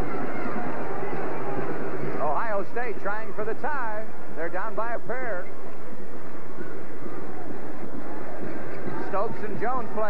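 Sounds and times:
arena crowd voices: 0:00.0 - 0:10.0.

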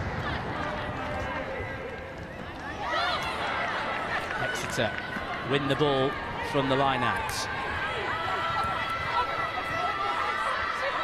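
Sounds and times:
crowd and stadium ambience: 0:00.0 - 0:11.0.

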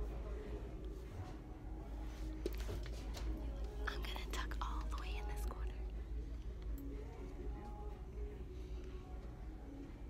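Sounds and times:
person whispering: 0:03.8 - 0:05.9.

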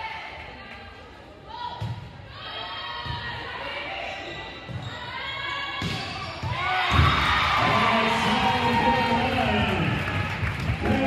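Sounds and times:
voices calling out in gym: 0:00.0 - 0:10.2.

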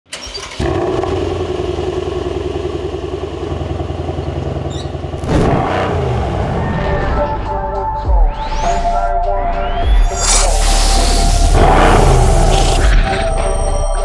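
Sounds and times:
car engine starting and idling: 0:00.1 - 0:06.8
engine revving: 0:00.5 - 0:07.4, 0:10.3 - 0:13.0
music: 0:06.1 - 0:14.0.

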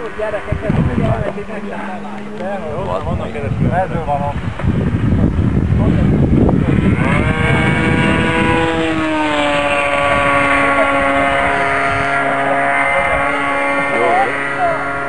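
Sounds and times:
model airplane engine buzzing: 0:00.0 - 0:15.0
rough gusty noise: 0:00.0 - 0:15.0.

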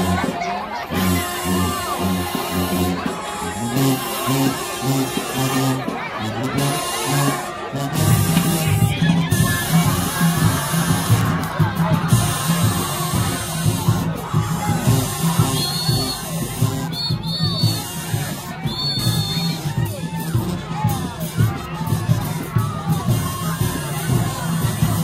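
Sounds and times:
crowd chatter: 0:00.0 - 0:25.0
marching band music: 0:00.0 - 0:25.0.

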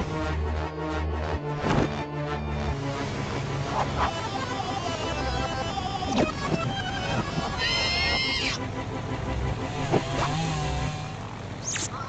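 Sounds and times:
cartoon propeller engine droning: 0:02.2 - 0:12.0.

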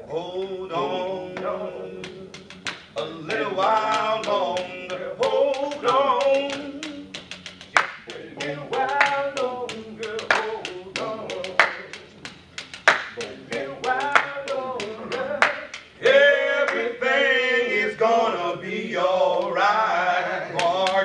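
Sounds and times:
men singing: 0:00.0 - 0:21.0
hand claps: 0:01.4 - 0:16.9, 0:20.5 - 0:21.0.

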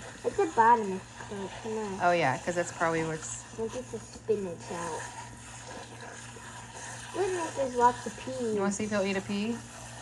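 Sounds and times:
water spraying into a colander: 0:00.0 - 0:10.0.

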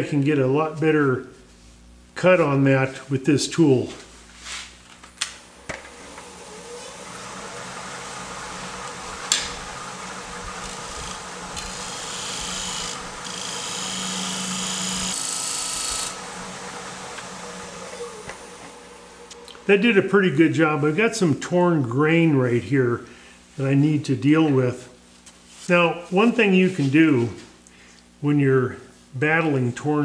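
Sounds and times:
lathe gouge cutting wood: 0:05.8 - 0:19.4.

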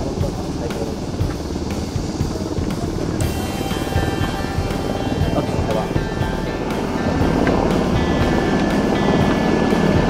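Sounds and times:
helicopters heavy rotor noise: 0:00.0 - 0:10.0.

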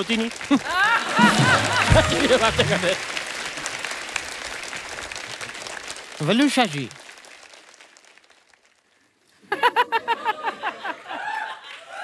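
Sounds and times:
studio audience applause: 0:00.0 - 0:09.2, 0:10.2 - 0:12.0.

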